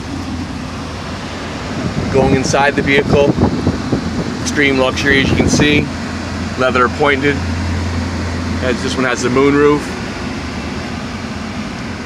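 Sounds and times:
vehicle idling hum: 0:00.0 - 0:12.0.

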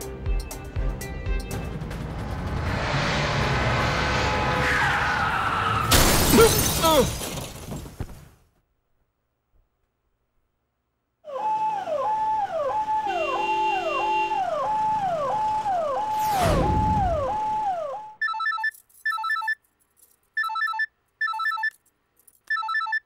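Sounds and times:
siren-like wail: 0:01.6 - 0:05.9, 0:11.3 - 0:18.2
whistle sweeping into low boom: 0:01.6 - 0:05.9, 0:14.4 - 0:18.2
telephone ringing: 0:18.2 - 0:19.6, 0:20.4 - 0:21.8, 0:22.5 - 0:23.0.

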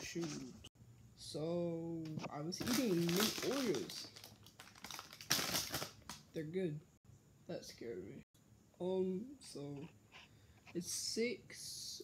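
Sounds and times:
plastic package crinkling: 0:02.5 - 0:06.3.

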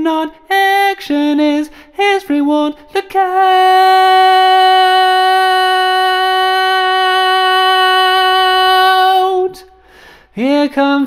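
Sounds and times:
man singing a cappella: 0:00.0 - 0:11.0
short breath: 0:01.7 - 0:02.0, 0:09.7 - 0:10.4.

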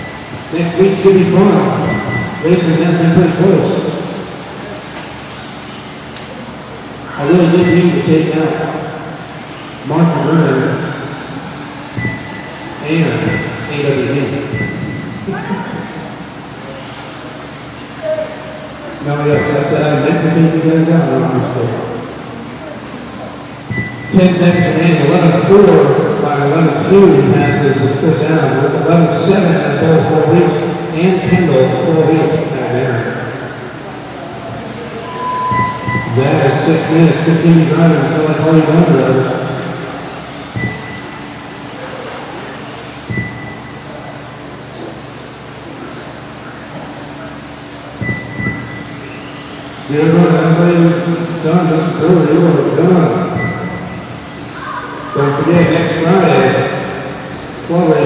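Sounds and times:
radio-controlled cars whirring: 0:00.0 - 0:58.0
short high beep: 0:01.7 - 0:02.6, 0:07.6 - 0:08.0, 0:12.0 - 0:12.6, 0:13.2 - 0:13.8, 0:14.5 - 0:15.7, 0:23.7 - 0:24.8, 0:35.0 - 0:36.4, 0:40.6 - 0:41.2, 0:43.1 - 0:43.8, 0:53.2 - 0:54.1.

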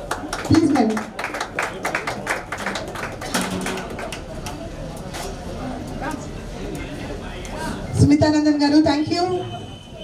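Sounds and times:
people clapping: 0:00.0 - 0:05.0.

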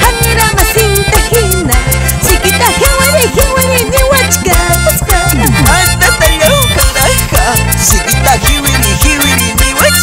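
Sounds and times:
instrumental band dance music: 0:00.0 - 0:10.0.

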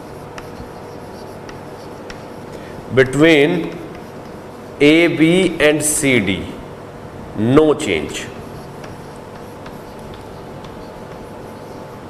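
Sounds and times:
chalk tapping: 0:00.0 - 0:04.8, 0:08.3 - 0:12.0
chalk scratching on chalkboard: 0:00.0 - 0:05.6, 0:08.1 - 0:12.0.

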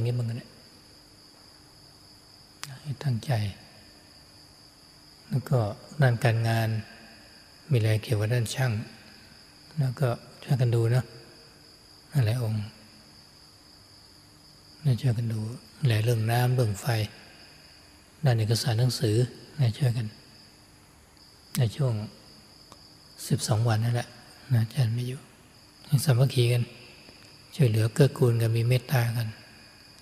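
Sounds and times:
man talking: 0:00.0 - 0:00.4, 0:02.6 - 0:03.6, 0:05.3 - 0:06.9, 0:07.7 - 0:08.9, 0:09.8 - 0:11.1, 0:12.1 - 0:12.8, 0:14.8 - 0:17.2, 0:18.2 - 0:20.1, 0:21.6 - 0:22.1, 0:23.2 - 0:25.2, 0:25.9 - 0:26.8, 0:27.5 - 0:29.4
crickets chirping: 0:00.0 - 0:30.0
high-pitched insect trill: 0:00.0 - 0:30.0.

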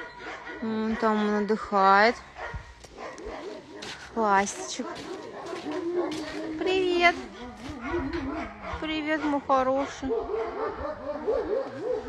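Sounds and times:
dogs barking and whining: 0:00.0 - 0:12.0.

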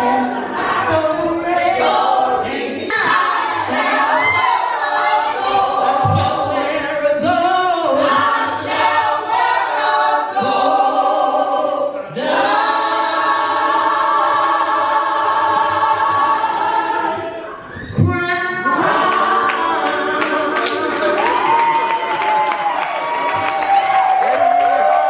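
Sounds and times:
women singing gospel: 0:00.0 - 0:22.3.

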